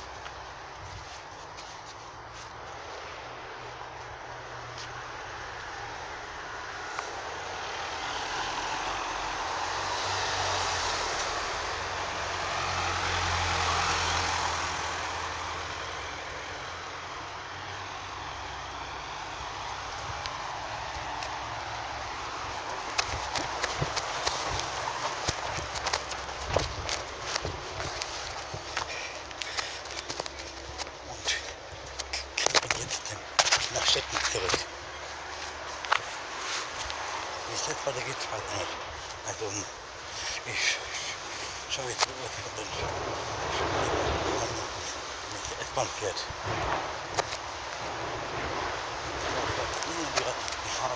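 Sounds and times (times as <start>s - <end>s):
motor vehicle passing: 0.0s - 50.9s.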